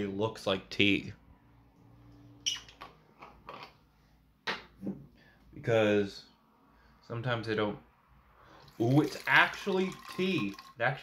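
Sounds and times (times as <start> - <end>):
drink can clinking: 8.7 - 10.8.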